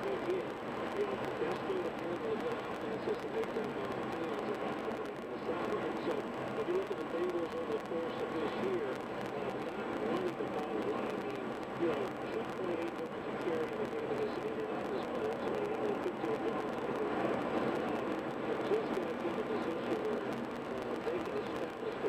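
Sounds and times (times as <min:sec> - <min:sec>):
muffled voice talking: 0:00.0 - 0:22.0.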